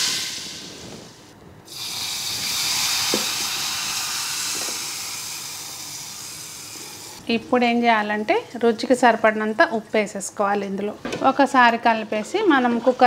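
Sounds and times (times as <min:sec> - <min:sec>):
hot oil sizzling in saucepan: 0:01.7 - 0:07.2
water hissing on hot oil: 0:01.7 - 0:07.2.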